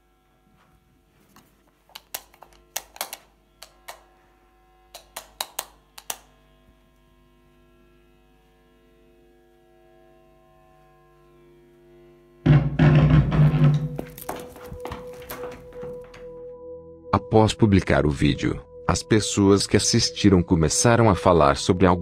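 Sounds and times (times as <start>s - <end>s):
sharp knocks: 12.5s - 16.2s
low drone of held tones: 14.9s - 22.0s.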